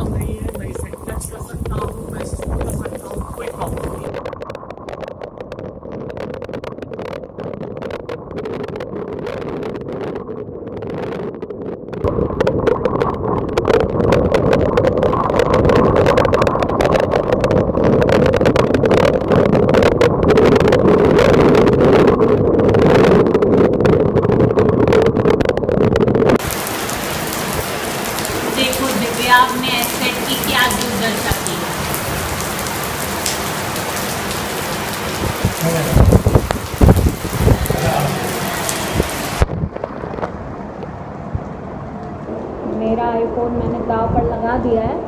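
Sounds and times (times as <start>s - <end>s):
raindrops ticking on phone: 0.0s - 40.9s
heavy rain: 0.0s - 45.0s
wind buffeting microphone: 0.0s - 45.0s.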